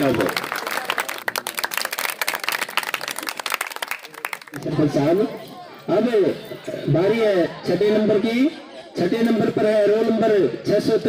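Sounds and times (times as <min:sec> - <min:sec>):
crowd clapping: 0:00.0 - 0:05.0.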